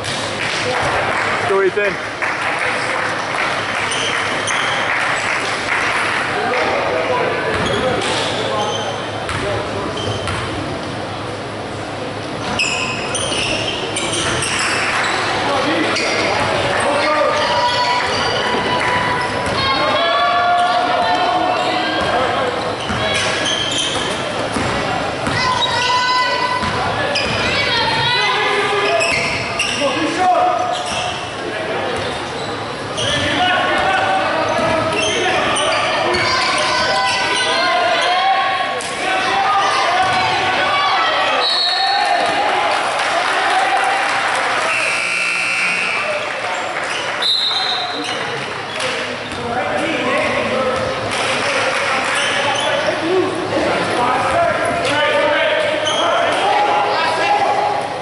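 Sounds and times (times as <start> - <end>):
voices calling out in hall: 0.0 - 58.0.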